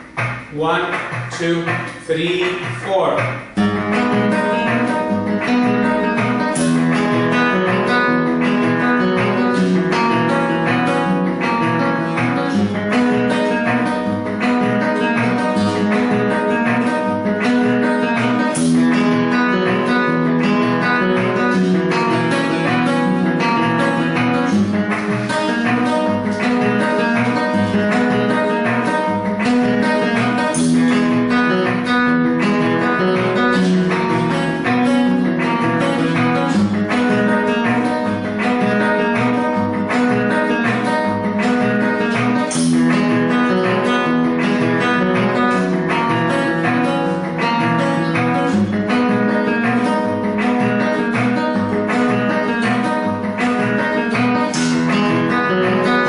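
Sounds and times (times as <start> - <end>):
cajon thumps: 0.0 - 56.0
flamenco guitar strumming: 0.0 - 56.0.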